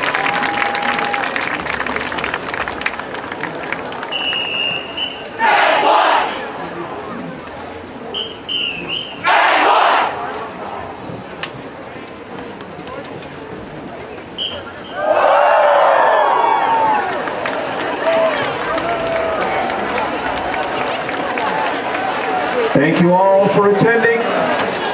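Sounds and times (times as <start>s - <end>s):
crowd cheering and yelling: 0.0s - 2.0s, 4.1s - 6.6s, 9.2s - 10.4s, 14.8s - 24.9s.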